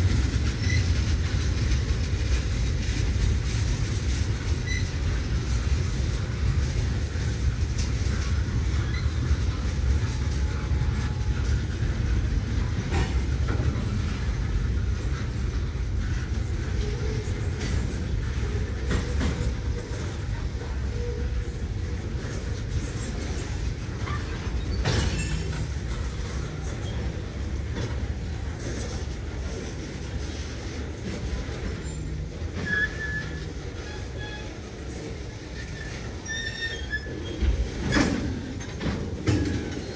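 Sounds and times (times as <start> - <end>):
steel wheels rumbling on rail: 0.0 - 39.9.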